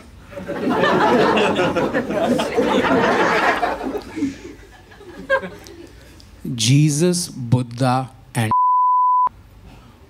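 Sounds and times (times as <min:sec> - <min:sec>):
censor bleep: 0:08.5 - 0:09.3.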